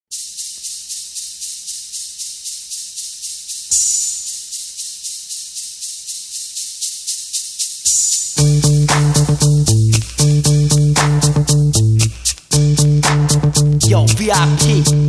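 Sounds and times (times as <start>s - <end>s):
drum machine hi-hat ticking: 0.1s - 15.0s.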